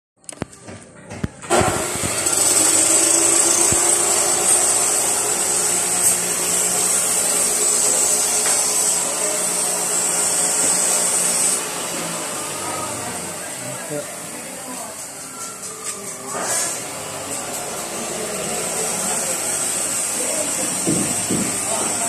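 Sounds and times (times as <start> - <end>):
power tool motor whining: 1.4 - 22.0.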